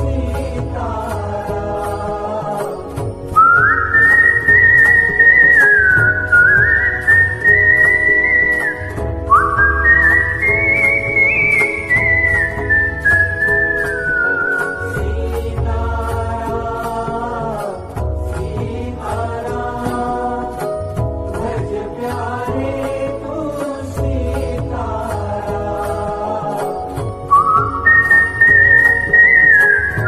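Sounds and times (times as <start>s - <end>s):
man whistling a melody: 3.3s - 15.4s, 27.2s - 30.0s
chant-like singing: 14.4s - 20.7s, 21.4s - 26.8s.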